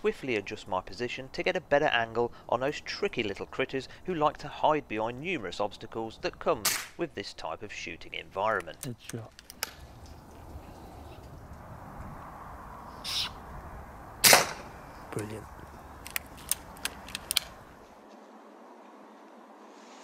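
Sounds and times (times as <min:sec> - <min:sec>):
air rifle shot crack: 0:06.6 - 0:07.0, 0:14.2 - 0:14.8
light clicks: 0:15.6 - 0:17.6.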